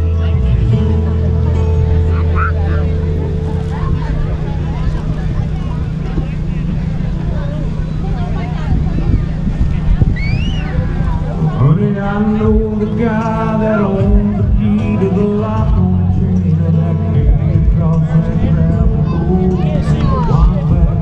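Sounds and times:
band holding low note: 0:00.0 - 0:21.0
crowd chatter: 0:00.0 - 0:21.0
wind noise on microphone: 0:01.8 - 0:21.0
high whoop: 0:10.2 - 0:10.9.

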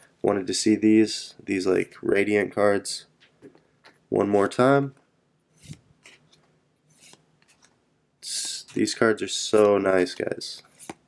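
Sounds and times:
trading cards swishing: 0:05.5 - 0:11.0.

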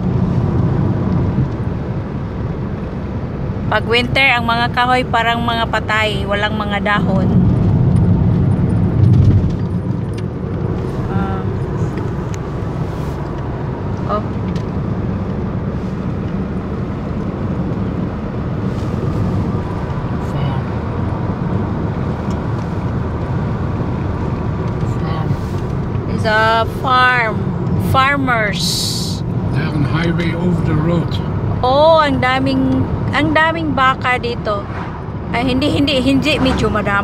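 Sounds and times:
car road and engine rumble: 0:00.0 - 0:37.0.

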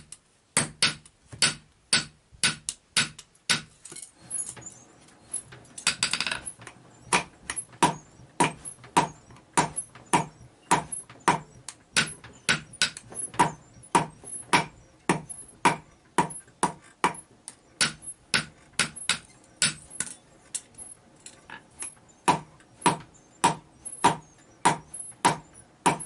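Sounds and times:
hammer striking metal on anvil: 0:00.6 - 0:03.7, 0:07.1 - 0:17.2, 0:17.8 - 0:20.1, 0:22.3 - 0:26.0.

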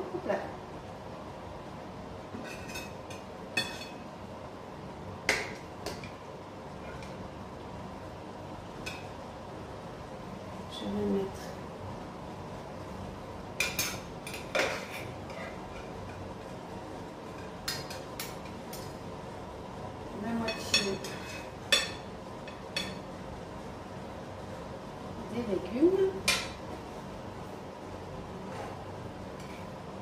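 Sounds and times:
utensils clinking against dishes: 0:02.4 - 0:04.0, 0:13.6 - 0:16.2, 0:20.4 - 0:23.0.

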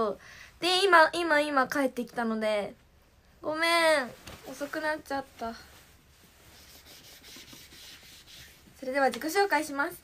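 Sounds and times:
girl speaking: 0:00.0 - 0:02.8, 0:03.4 - 0:05.7, 0:08.8 - 0:10.0
rubbing and rustling handling noise: 0:03.8 - 0:09.9.

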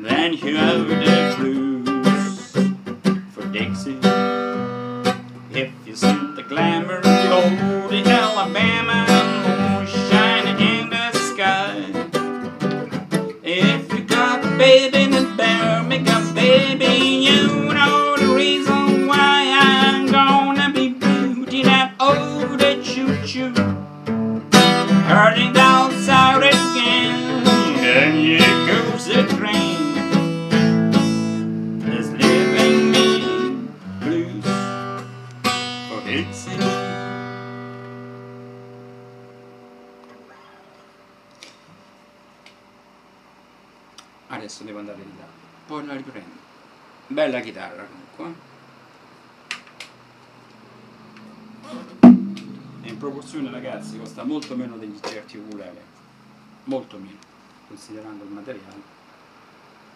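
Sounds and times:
acoustic guitar strummed: 0:00.0 - 0:41.5, 0:50.5 - 0:55.4.

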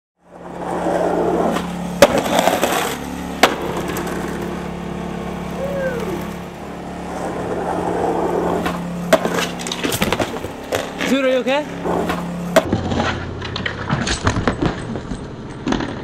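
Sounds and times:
skateboard wheels rolling on concrete: 0:00.2 - 0:16.0
skateboard clack: 0:01.4 - 0:04.4, 0:08.5 - 0:11.2.

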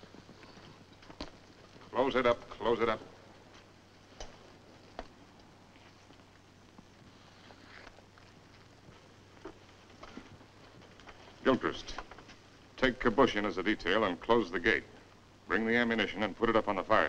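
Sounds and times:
faint hiss and hum: 0:00.0 - 0:17.0.

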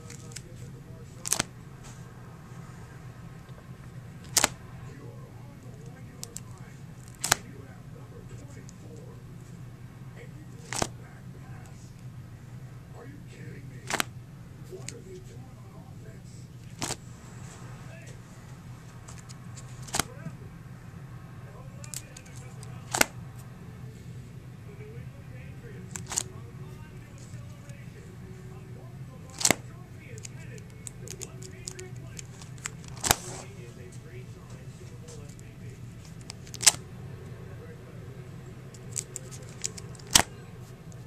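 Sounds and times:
plastic binder pages snapping: 0:00.0 - 0:00.5, 0:01.2 - 0:01.5, 0:04.2 - 0:04.6, 0:06.2 - 0:07.5, 0:10.6 - 0:11.0, 0:13.8 - 0:14.1, 0:16.6 - 0:17.0, 0:19.0 - 0:20.1, 0:21.8 - 0:23.1, 0:25.9 - 0:26.3, 0:29.3 - 0:33.6, 0:35.1 - 0:36.8, 0:38.7 - 0:40.3
steady low hum: 0:00.0 - 0:41.0.

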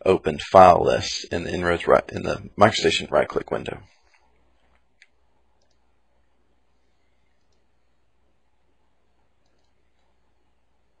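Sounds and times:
low steady hum: 0:00.0 - 0:11.0
computer mouse click: 0:04.1 - 0:05.9, 0:07.3 - 0:07.7, 0:09.4 - 0:10.2.

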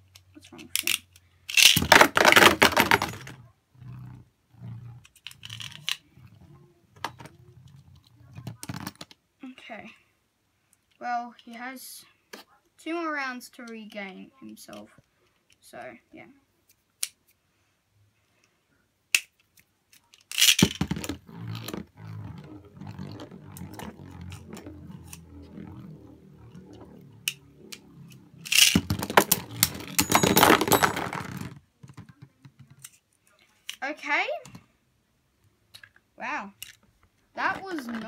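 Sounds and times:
spinning tops whirring: 0:20.6 - 0:31.0
spinning tops clattering: 0:22.4 - 0:31.5.

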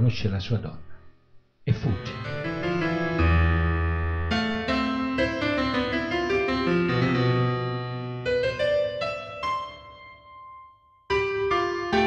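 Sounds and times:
slow solo piano: 0:02.0 - 0:12.0.

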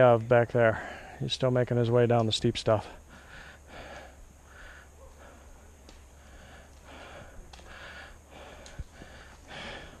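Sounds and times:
person breathing hard: 0:03.0 - 0:05.6, 0:06.2 - 0:10.0.

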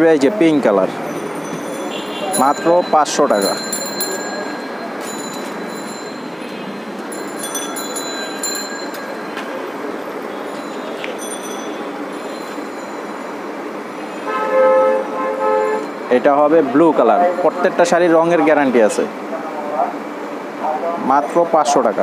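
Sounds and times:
busy shop background noise: 0:00.0 - 0:22.0
horn-like steady tone: 0:14.0 - 0:16.0.

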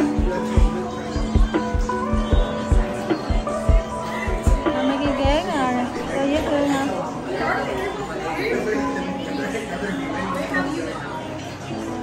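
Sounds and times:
indistinct chatter of customers: 0:00.0 - 0:12.0.

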